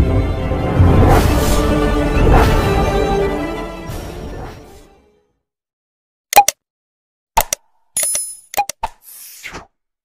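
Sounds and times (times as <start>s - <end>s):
mouse click pops: 6.3s - 6.6s.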